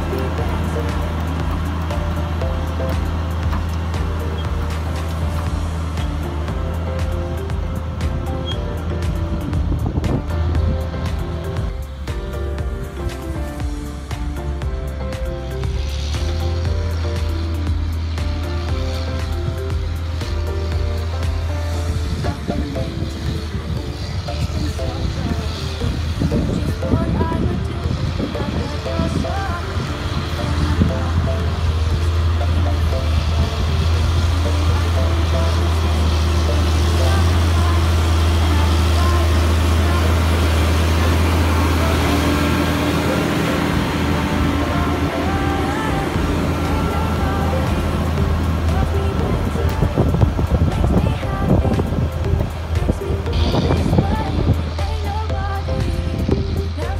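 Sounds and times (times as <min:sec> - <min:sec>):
song with singing: 0:00.0 - 0:56.9
tractor diesel engine drone: 0:00.0 - 0:56.9.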